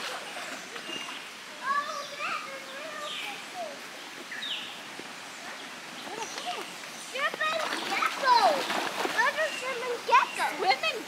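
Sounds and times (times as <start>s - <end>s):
water splashing: 0.0s - 11.0s.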